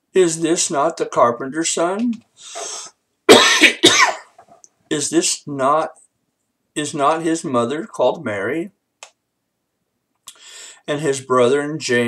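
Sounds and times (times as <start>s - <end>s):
man speaking: 0.0s - 2.7s, 4.9s - 6.1s, 6.8s - 8.8s, 10.9s - 12.0s
man coughing: 3.3s - 4.4s.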